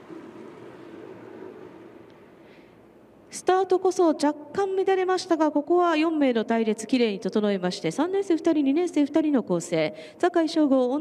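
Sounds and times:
whirring drone of bicycles: 0:00.0 - 0:02.7.

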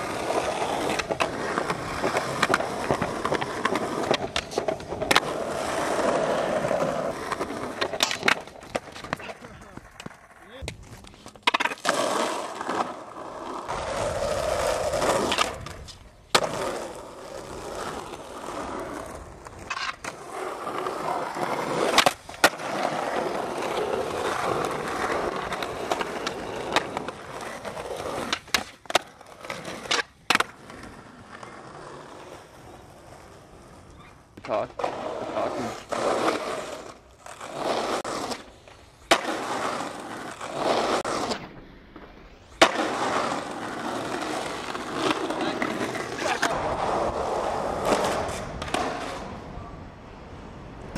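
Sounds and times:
skateboard hitting ground: 0:00.0 - 0:49.6
skateboard wheels rolling on asphalt: 0:00.0 - 0:50.9
skateboard landing clack: 0:07.3 - 0:12.9, 0:21.7 - 0:23.2, 0:28.2 - 0:30.8, 0:38.2 - 0:47.1.

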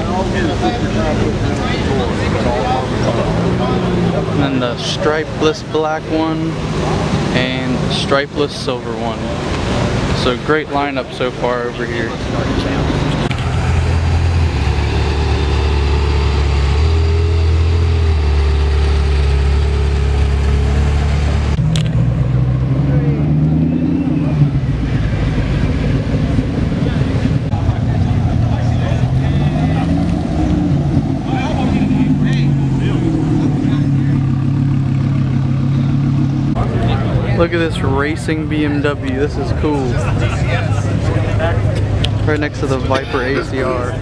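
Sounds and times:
car engine revving: 0:00.0 - 0:44.0.

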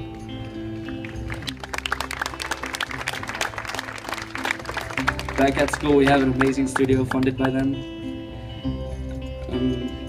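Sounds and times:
audience clapping: 0:00.4 - 0:07.6.

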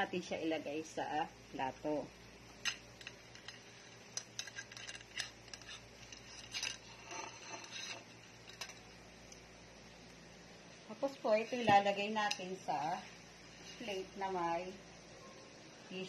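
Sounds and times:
metal clinks and rattles: 0:02.6 - 0:08.9.

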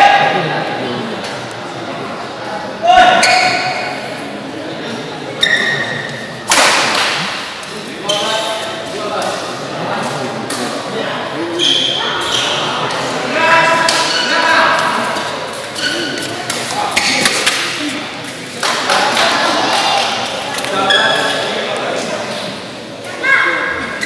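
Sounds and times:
voices in large hall: 0:00.0 - 0:24.0
shoe squeaks on court: 0:11.6 - 0:12.7, 0:15.7 - 0:16.4, 0:20.8 - 0:21.4.

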